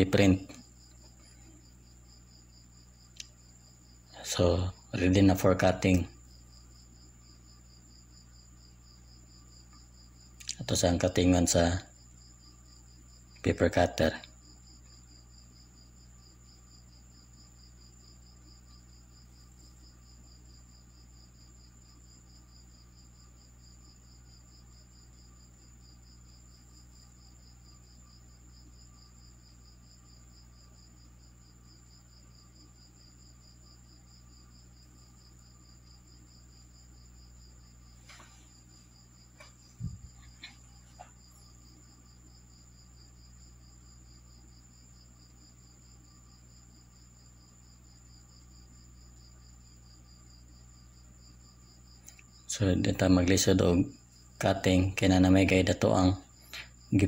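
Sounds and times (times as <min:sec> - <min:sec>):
crickets trilling: 0:00.0 - 0:57.0.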